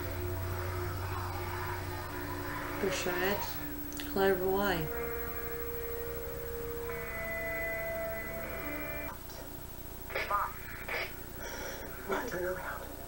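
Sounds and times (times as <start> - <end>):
held note of background score: 0.0 - 9.2.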